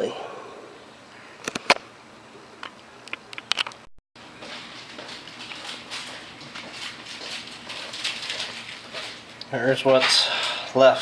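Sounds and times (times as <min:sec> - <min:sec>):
handling rustling and scratching: 0:04.4 - 0:10.2.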